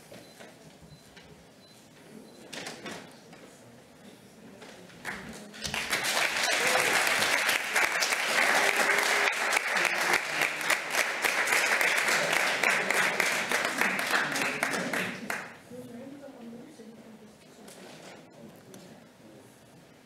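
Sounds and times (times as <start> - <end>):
audience applauding: 5.0 - 15.6.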